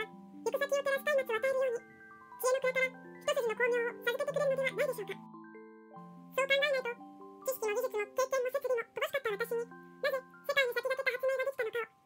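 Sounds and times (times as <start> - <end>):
person narrating: 0.0 - 5.3, 6.3 - 12.0
soft music-box music: 0.0 - 12.0.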